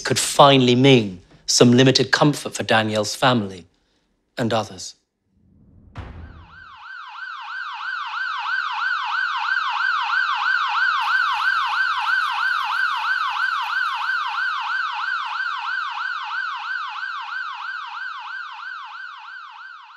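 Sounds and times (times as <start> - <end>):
emergency siren yelping: 6.6 - 19.9.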